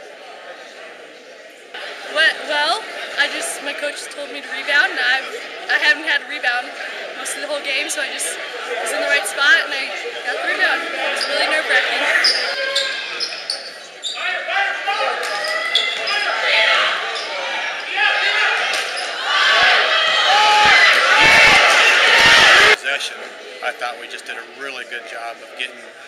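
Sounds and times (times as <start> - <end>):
crowd cheering loudly: 1.8 - 22.8
players and spectators shouting: 1.8 - 23.4.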